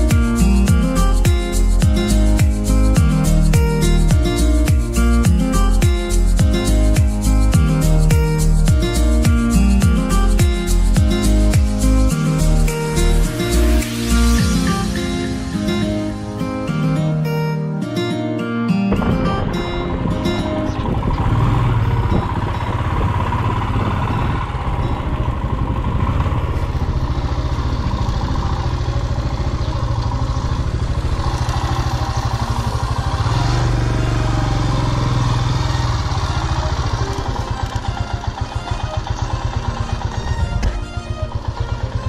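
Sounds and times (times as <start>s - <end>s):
motorcycle engine riding: 0.0s - 16.6s, 18.9s - 42.0s.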